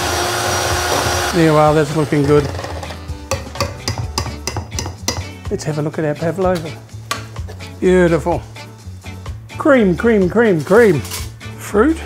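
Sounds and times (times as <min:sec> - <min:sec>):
mixer beaters knocking metal bowl: 0:00.5 - 0:05.4.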